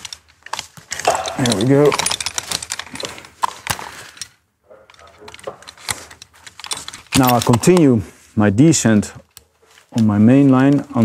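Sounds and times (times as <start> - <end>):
metal climbing hardware clinking: 0.0 - 8.0.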